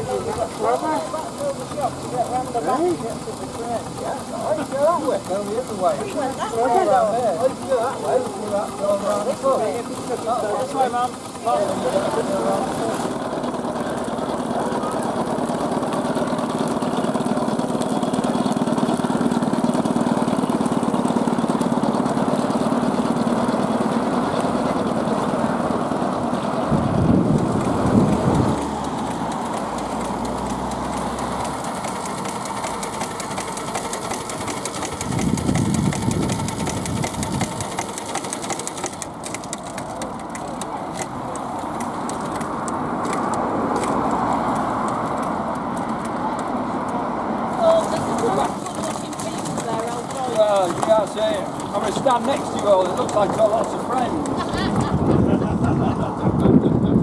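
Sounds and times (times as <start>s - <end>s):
miniature steam vehicles running: 0.0s - 57.0s
low rumbles: 25.1s - 31.4s.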